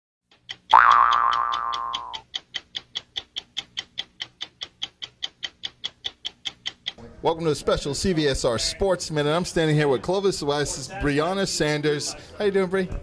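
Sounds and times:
fast clock ticking: 0:00.3 - 0:07.0
ringing boing swooping up: 0:00.7 - 0:02.2.

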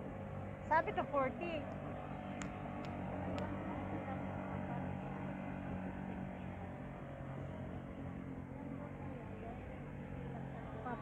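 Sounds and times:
outboard motor droning: 0:00.0 - 0:11.0.

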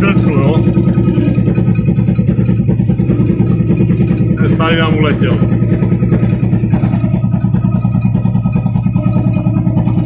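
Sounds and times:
diesel truck engine idling: 0:00.0 - 0:10.0.

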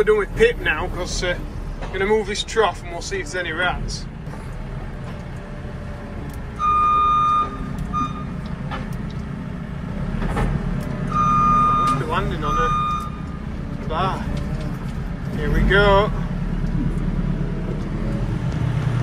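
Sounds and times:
loader engine running: 0:00.0 - 0:19.0
reversing alarm beeping: 0:06.6 - 0:08.5, 0:11.1 - 0:13.4.

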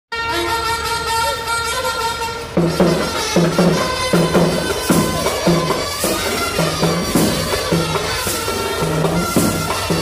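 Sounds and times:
reedy wind instrument note: 0:00.1 - 0:10.0.

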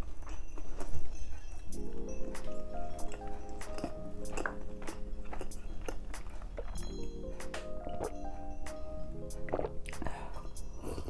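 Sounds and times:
close chewing with wet mouth clicks: 0:00.0 - 0:08.4, 0:09.3 - 0:10.6
soft background music: 0:00.0 - 0:11.0.

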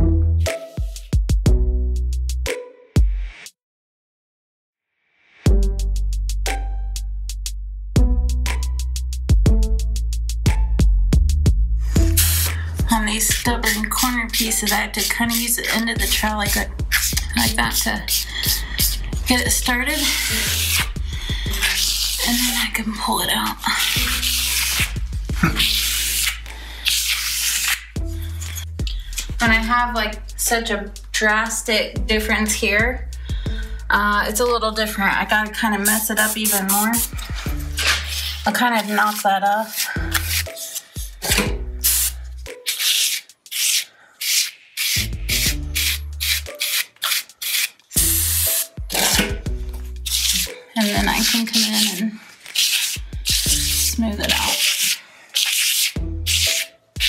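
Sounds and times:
background music: 0:00.0 - 0:03.5, 0:05.4 - 0:57.0
trowel scraping earthen plaster: 0:11.9 - 0:29.4, 0:35.6 - 0:56.8.

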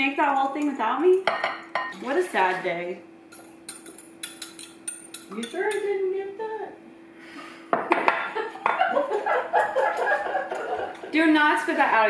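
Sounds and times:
spoon clinking and scraping a bowl: 0:03.3 - 0:05.9.

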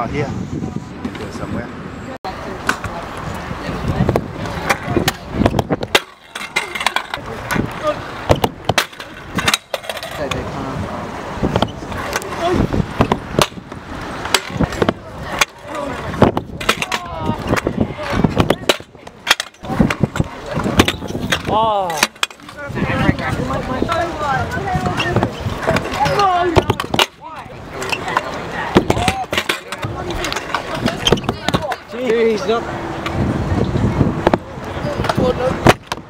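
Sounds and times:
scooter wheels rumbling on concrete: 0:02.3 - 0:36.0
scooter deck clacking on ground: 0:04.4 - 0:10.4, 0:13.0 - 0:32.2.

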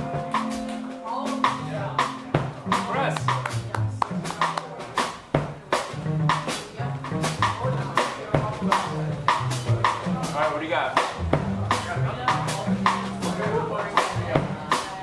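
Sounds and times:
double bass notes: 0:00.0 - 0:15.0
drum and cymbal strokes: 0:00.0 - 0:15.0.

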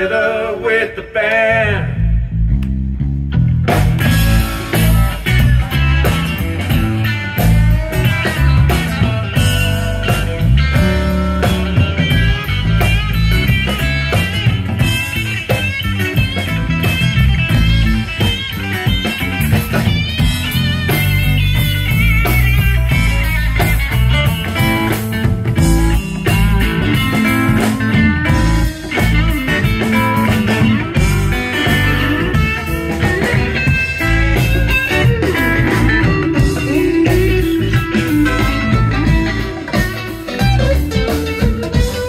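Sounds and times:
bass guitar: 0:00.0 - 0:42.0
live rock band: 0:00.0 - 0:42.0.

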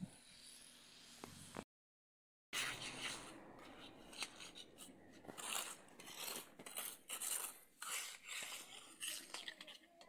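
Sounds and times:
trowel scraping wet concrete: 0:02.6 - 0:10.0.

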